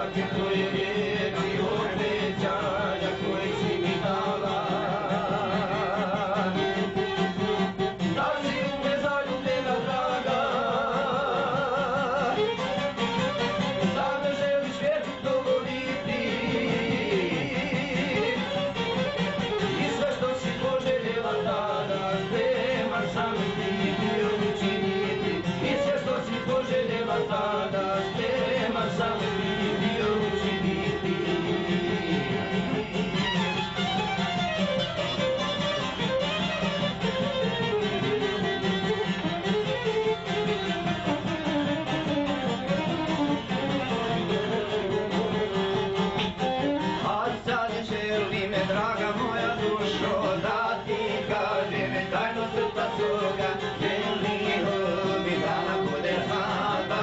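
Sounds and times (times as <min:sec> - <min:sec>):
folk lead melody: 0:00.0 - 0:57.0
plucked string instruments: 0:00.0 - 0:57.0
strummed guitar: 0:00.0 - 0:57.0.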